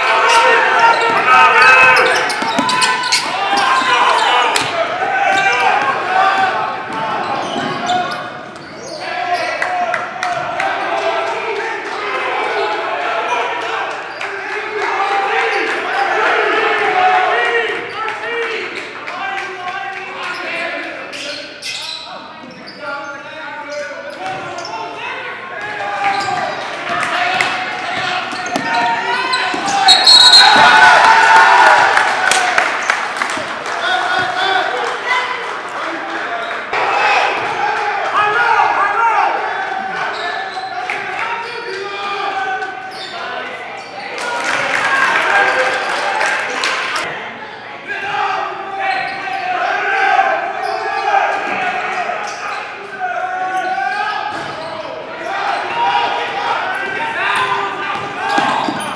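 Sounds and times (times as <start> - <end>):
voices calling out in a hall: 0.0 - 58.9.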